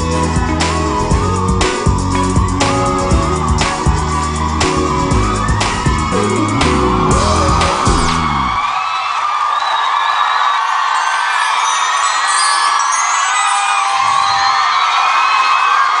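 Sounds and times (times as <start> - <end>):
band chord: 0.0 - 8.6
high-pitched cheers and screams: 0.0 - 16.0
audience applauding: 1.7 - 16.0.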